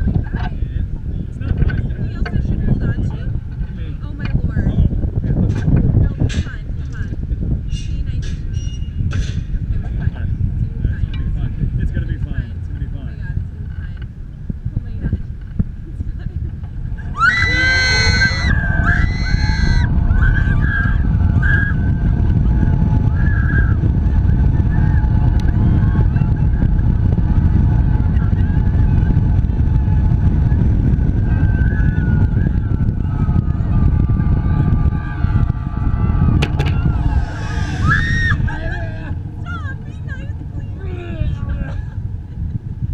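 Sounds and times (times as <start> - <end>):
wind buffeting microphone: 0.0 - 42.9
rising whine: 17.0 - 42.9
woman screaming: 17.1 - 21.0, 37.5 - 39.7.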